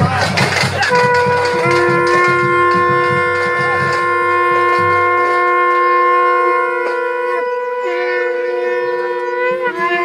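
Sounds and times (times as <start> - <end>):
double-reed pipe playing long notes: 0.8 - 10.0.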